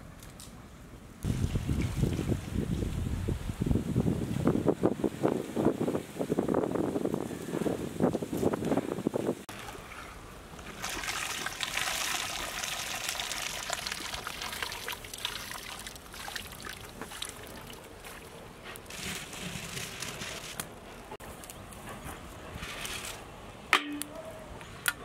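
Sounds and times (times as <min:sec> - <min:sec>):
water pouring and dribbling: 0:01.2 - 0:03.1, 0:09.5 - 0:20.6.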